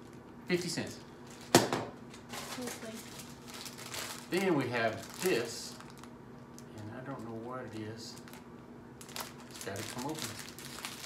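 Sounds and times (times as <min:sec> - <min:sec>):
plastic and cardboard rustling: 0:01.2 - 0:06.1, 0:09.0 - 0:11.0.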